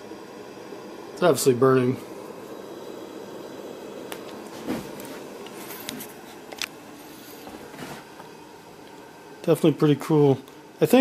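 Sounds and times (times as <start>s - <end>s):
lantern burner hissing: 0.0s - 11.0s.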